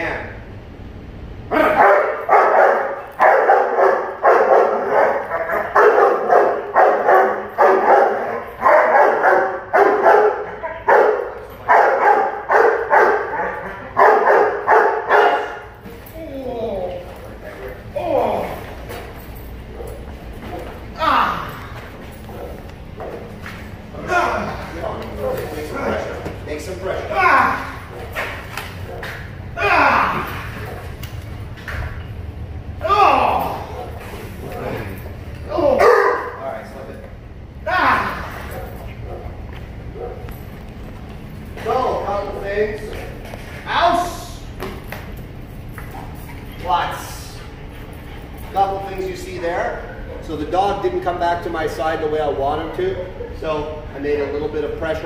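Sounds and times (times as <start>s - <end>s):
man shouting: 1.5s - 2.6s, 17.8s - 18.7s, 20.9s - 21.8s, 23.9s - 28.0s, 29.5s - 30.8s, 32.8s - 34.0s, 34.7s - 36.4s, 37.6s - 38.6s, 43.7s - 44.5s
man giving commands: 15.1s - 18.7s, 23.9s - 28.0s, 41.6s - 44.6s, 46.6s - 47.5s, 48.5s - 55.0s
metal leash chain clinking: 15.8s - 23.5s, 40.0s - 41.7s, 44.8s - 49.0s.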